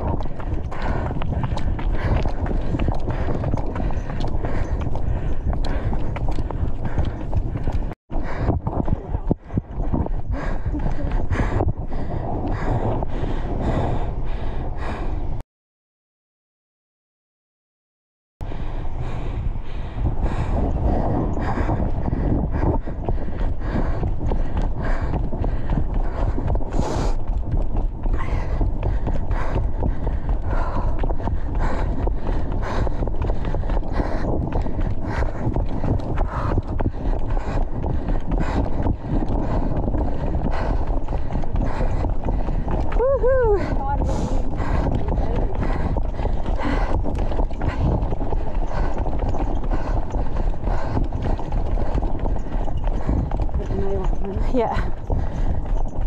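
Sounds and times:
camera rumble and rubbing: 0:00.0 - 0:15.0, 0:18.6 - 0:56.0
hard breathing: 0:00.0 - 0:15.4, 0:18.4 - 0:56.0
running footsteps on dirt: 0:00.0 - 0:15.4, 0:18.4 - 0:56.0.

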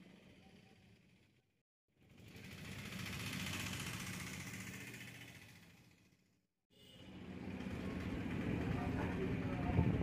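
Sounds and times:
small engine running: 0:00.0 - 0:06.4, 0:07.1 - 0:10.0.

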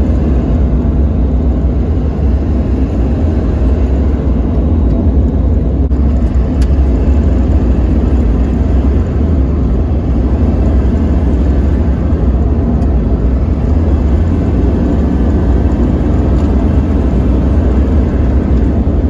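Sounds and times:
diesel engine and road drone: 0:00.0 - 0:19.0.

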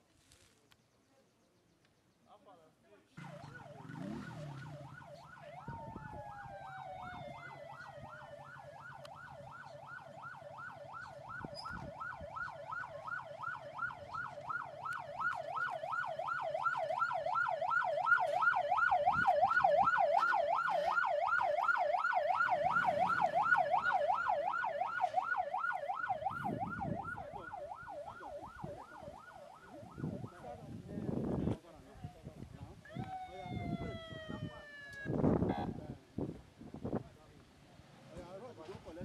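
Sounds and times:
electronic siren yelping: 0:03.2 - 0:30.4, 0:32.9 - 0:35.8.

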